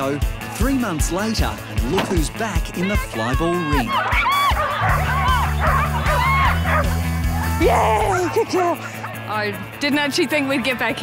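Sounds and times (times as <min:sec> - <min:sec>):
background music: 0:00.0 - 0:11.0
dogs barking excitedly: 0:03.8 - 0:07.2.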